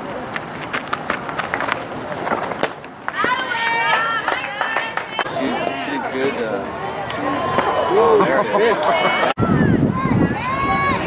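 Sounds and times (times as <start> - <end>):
young voices shouting and chanting: 3.1 - 11.0.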